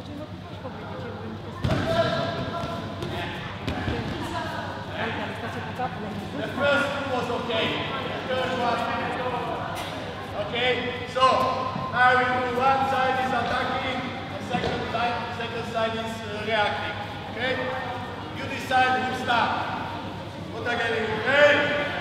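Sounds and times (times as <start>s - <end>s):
people talking in a hall: 0.0s - 22.0s.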